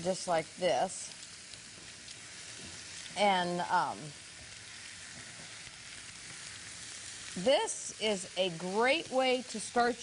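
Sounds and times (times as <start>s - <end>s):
food sizzling in a skillet: 0.0s - 10.0s.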